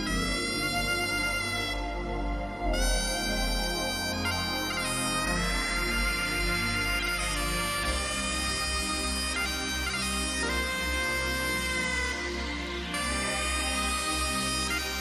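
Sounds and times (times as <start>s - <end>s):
bagpipe melody with drones: 0.0s - 15.0s.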